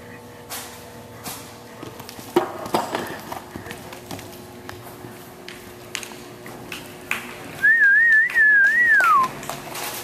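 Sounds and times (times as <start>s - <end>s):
person whistling: 7.6s - 9.3s.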